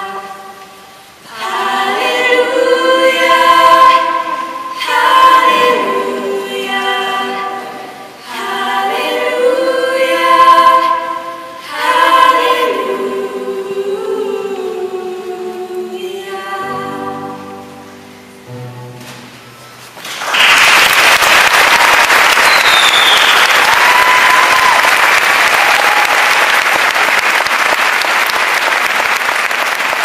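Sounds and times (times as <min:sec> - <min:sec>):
women singing: 0:00.0 - 0:17.9.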